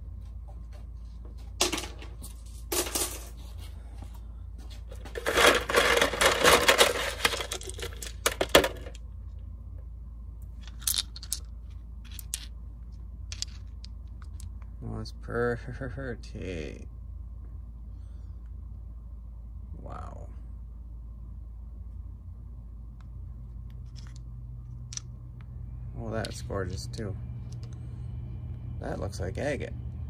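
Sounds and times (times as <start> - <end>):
stones rattling in plastic canister: 5.0 - 9.0, 10.7 - 11.4.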